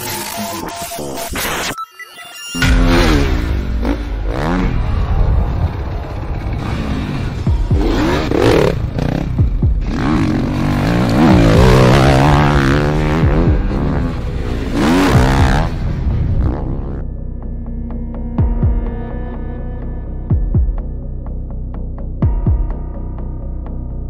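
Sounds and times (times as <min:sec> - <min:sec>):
dirt bike engine revving: 0:02.6 - 0:04.8, 0:06.5 - 0:15.8.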